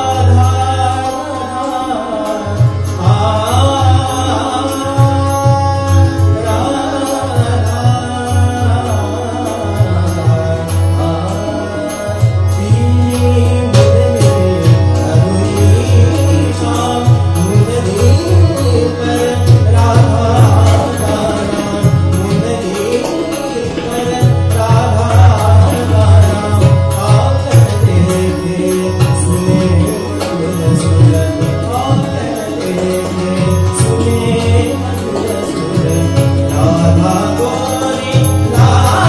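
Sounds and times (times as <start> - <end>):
harmonium: 0.0 - 39.0
man singing: 0.0 - 39.0
tabla drumming: 0.0 - 39.0.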